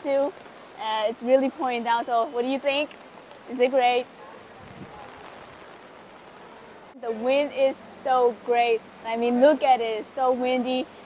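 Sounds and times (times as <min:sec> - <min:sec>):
heavy rain pouring: 0:00.0 - 0:11.0.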